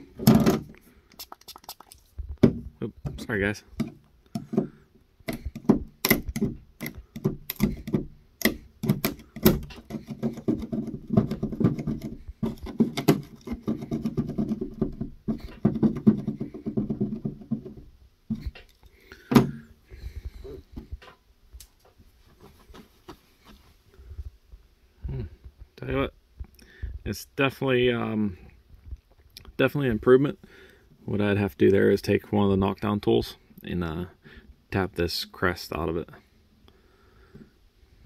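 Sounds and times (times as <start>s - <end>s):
plastic scraper scraping: 6.3s - 17.8s.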